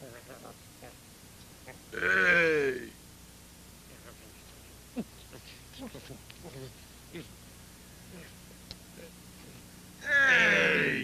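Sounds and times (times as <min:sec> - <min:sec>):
bleat-like cry: 0:02.0 - 0:02.8, 0:10.0 - 0:11.0.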